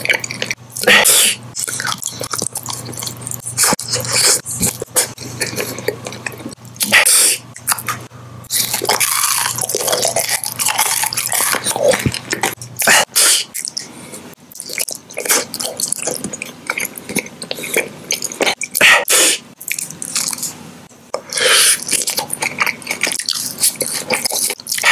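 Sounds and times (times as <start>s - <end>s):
wet chewing of candy: 0.0s - 6.9s, 7.5s - 24.9s
sticky mouth clicks and smacks: 19.6s - 20.5s.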